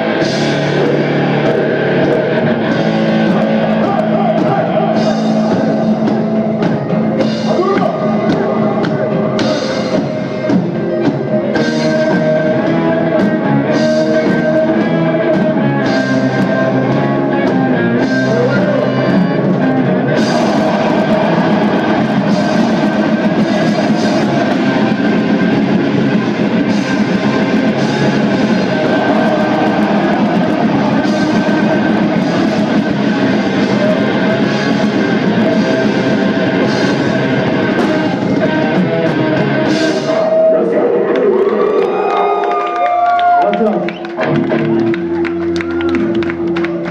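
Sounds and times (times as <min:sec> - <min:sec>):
sliding bending guitar tones: 0:00.0 - 0:40.3
vocals: 0:00.0 - 0:42.4
distorted electric guitars: 0:00.0 - 0:46.9.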